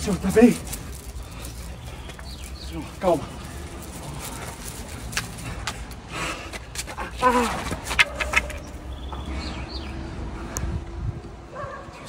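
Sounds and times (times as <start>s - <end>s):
bird chirping: 0.0s - 5.1s, 8.0s - 10.3s.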